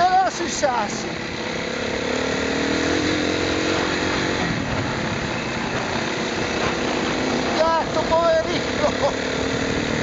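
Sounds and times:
off-road motorcycle engine: 0.0s - 10.0s
wind and ground noise: 0.0s - 10.0s.

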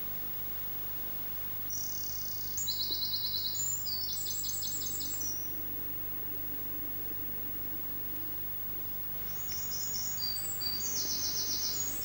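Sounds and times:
low background hiss: 0.0s - 12.0s
songbird trilling: 9.3s - 12.0s.

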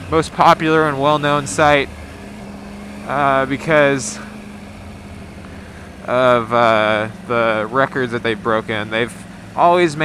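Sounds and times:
motorcycle engine humming: 0.0s - 10.0s
road and wind noise: 0.0s - 10.0s.

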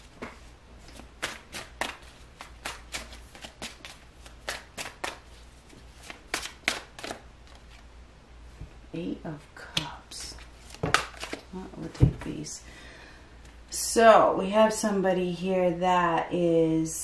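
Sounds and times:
cards being shuffled: 0.0s - 7.8s, 9.8s - 12.4s.

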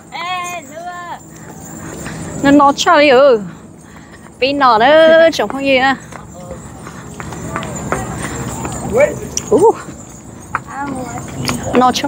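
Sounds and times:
voices: 0.0s - 12.0s
footsteps on concrete: 1.3s - 12.0s.

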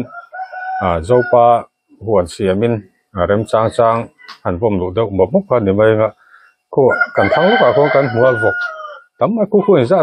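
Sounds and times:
man speaking: 0.8s - 10.0s.

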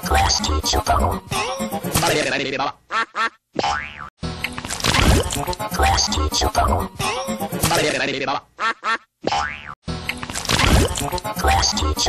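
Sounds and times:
music: 4.2s - 4.6s, 9.9s - 10.4s.

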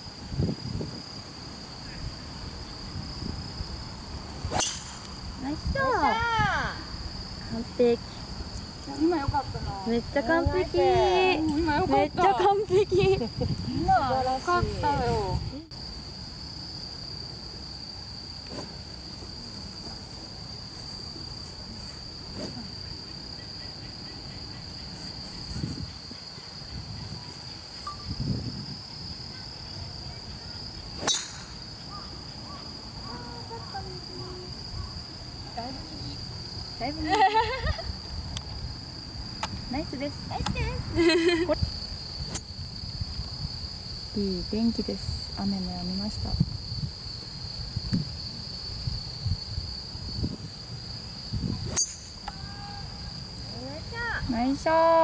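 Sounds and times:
insects chirring: 0.0s - 55.0s.

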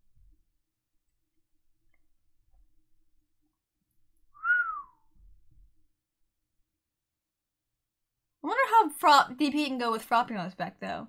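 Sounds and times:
short whistle-like note: 4.4s - 5.0s.

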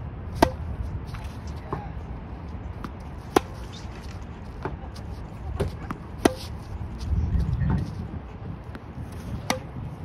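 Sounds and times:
tennis racket hitting ball: 0.3s - 1.3s, 2.8s - 3.8s, 5.5s - 6.7s, 9.2s - 9.8s.

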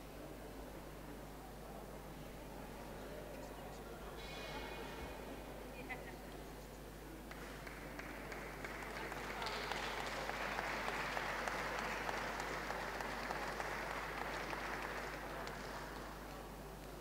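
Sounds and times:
audience applauding: 7.3s - 16.5s.

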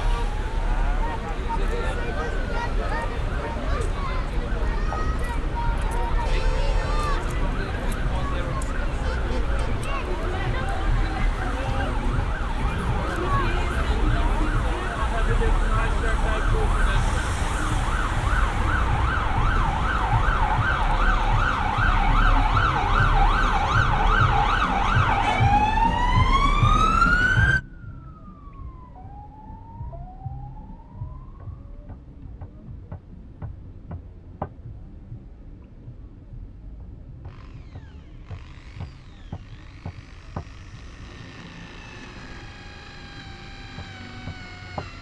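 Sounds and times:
low rumble: 0.0s - 45.0s
siren warbling and wailing: 37.3s - 45.0s.

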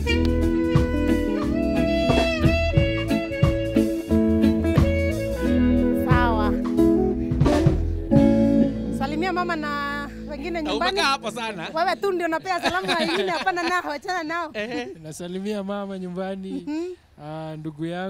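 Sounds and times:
live band music: 0.0s - 13.2s.

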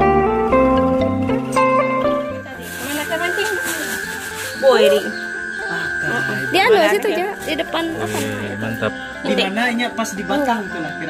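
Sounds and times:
plucked-string music: 0.0s - 11.0s
thin high-pitched tone: 1.5s - 11.0s
faint voices: 2.3s - 11.0s.

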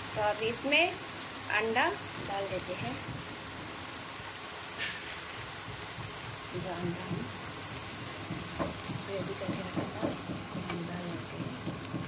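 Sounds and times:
vegetables sizzling in frying pan: 0.0s - 12.0s.

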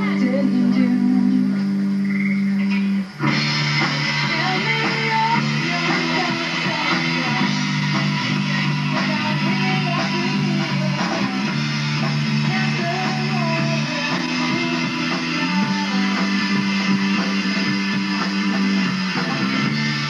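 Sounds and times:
bass notes: 0.0s - 20.0s
distorted electric guitar: 0.0s - 20.0s.

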